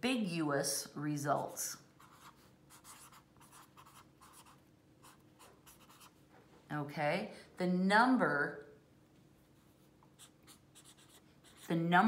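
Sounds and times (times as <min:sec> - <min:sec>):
marker writing on paper: 0:02.0 - 0:06.2, 0:10.2 - 0:11.8.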